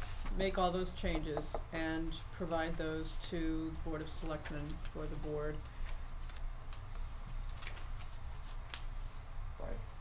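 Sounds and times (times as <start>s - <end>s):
low room hum: 0.0s - 10.0s
paper rustling: 5.7s - 9.0s.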